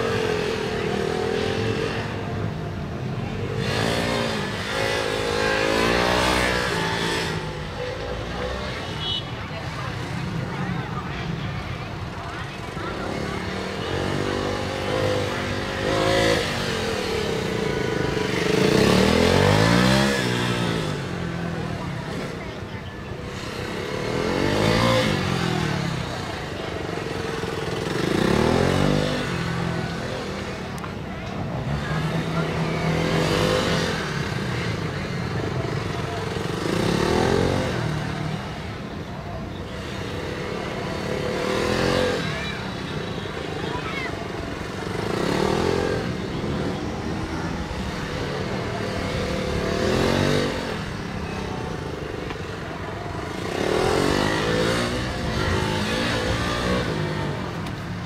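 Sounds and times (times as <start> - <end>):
motorcycle engine revving: 0.0 - 11.4, 12.0 - 58.0.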